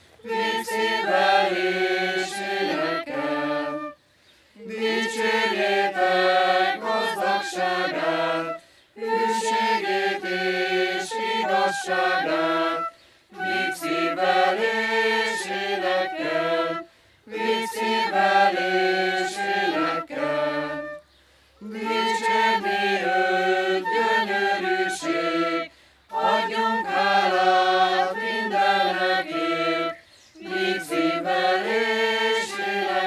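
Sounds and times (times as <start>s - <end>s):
choir singing unaccompanied: 0.2s - 4.0s, 4.6s - 21.0s, 21.6s - 33.0s.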